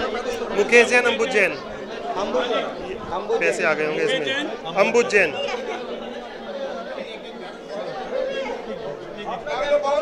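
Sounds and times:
chatter of people talking: 0:00.0 - 0:10.0.

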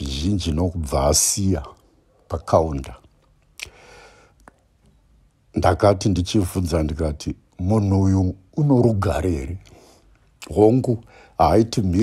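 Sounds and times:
man speaking into a microphone: 0:00.0 - 0:03.1, 0:05.6 - 0:09.7, 0:10.4 - 0:12.0
mouth click: 0:03.0 - 0:05.0
soft intake of breath: 0:03.6 - 0:04.4, 0:09.7 - 0:10.2, 0:11.0 - 0:11.4.

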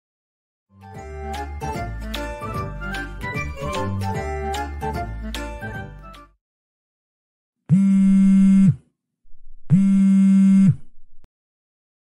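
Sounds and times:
mobile phone vibrating: 0:07.7 - 0:11.1.

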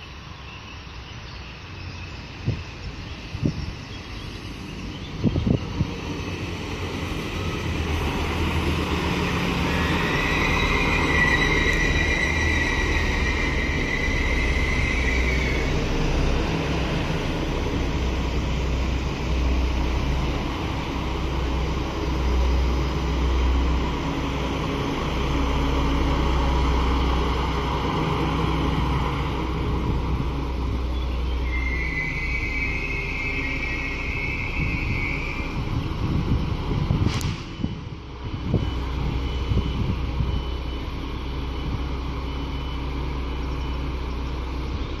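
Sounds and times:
diesel railcars rumbling: 0:00.0 - 0:45.0
high wheel squeal: 0:07.0 - 0:17.6, 0:30.9 - 0:36.2.

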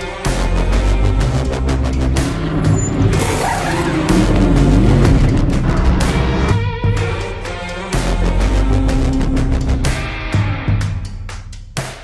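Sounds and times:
soundtrack music: 0:00.0 - 0:10.6
race car engine: 0:00.6 - 0:07.4.

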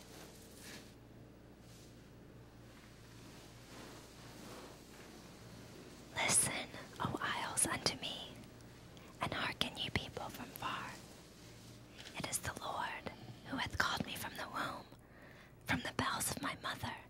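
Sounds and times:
person whispering: 0:06.1 - 0:08.5, 0:09.2 - 0:11.1, 0:12.0 - 0:14.9, 0:15.7 - 0:17.0.

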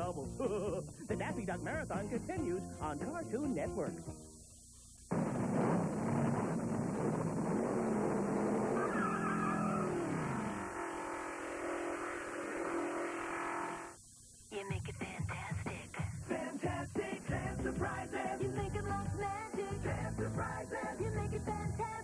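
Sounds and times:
high-pitched tape squeal: 0:05.1 - 0:14.0
cartoon race car engine revving: 0:06.3 - 0:13.9
tires skidding: 0:07.5 - 0:13.7.

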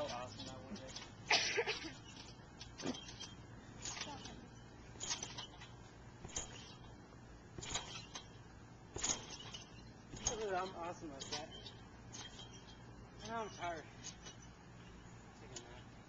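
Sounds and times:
trampoline springs creaking: 0:00.0 - 0:16.0.

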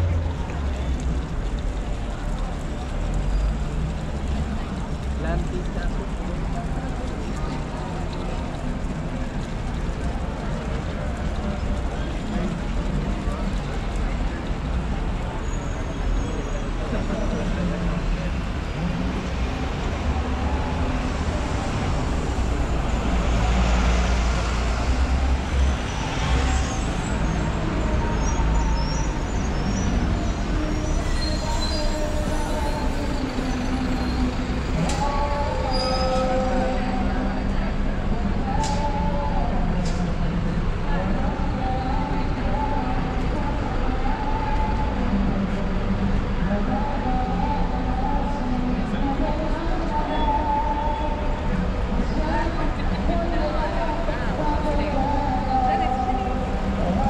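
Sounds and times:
bus passing: 0:00.0 - 0:57.0
passers-by talking: 0:00.0 - 0:57.0
traffic rumble: 0:00.0 - 0:57.0.

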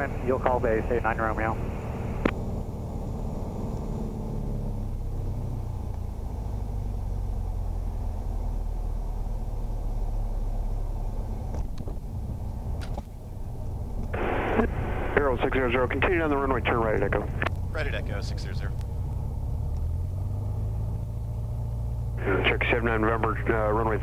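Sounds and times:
person speaking over radio: 0:00.0 - 0:01.6, 0:14.2 - 0:18.7, 0:22.2 - 0:24.0
aircraft engine idling: 0:00.0 - 0:24.0
radio hiss: 0:14.2 - 0:18.5, 0:22.2 - 0:24.0.

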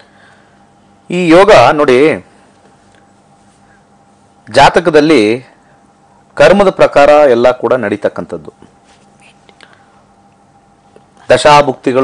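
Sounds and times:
faint electrical hum and hiss: 0:00.0 - 0:12.0.

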